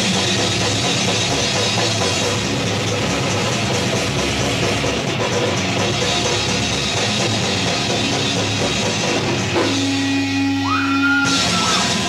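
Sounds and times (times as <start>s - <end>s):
live metal band playing: 0.0s - 12.0s.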